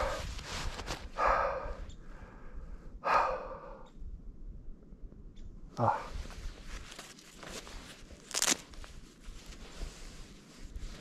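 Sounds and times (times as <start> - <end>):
person breathing out heavily: 0.0 - 0.4, 1.1 - 3.9.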